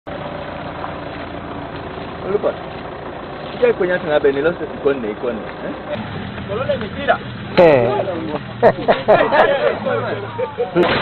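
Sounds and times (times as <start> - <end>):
engine droning: 0.1 - 11.0.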